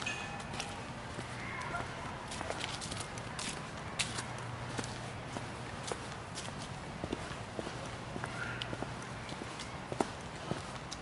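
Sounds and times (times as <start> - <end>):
footsteps on dry leaves: 0.0 - 10.8.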